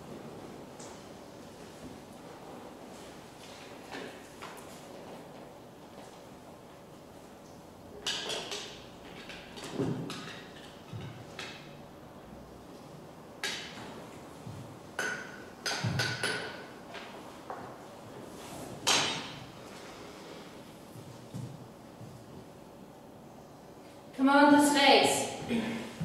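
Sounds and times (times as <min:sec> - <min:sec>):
objects knocking on hard floor: 0:14.5 - 0:16.6.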